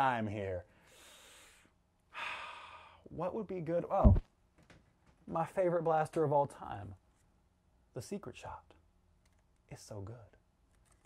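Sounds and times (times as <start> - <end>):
man breathing: 0.7 - 3.1.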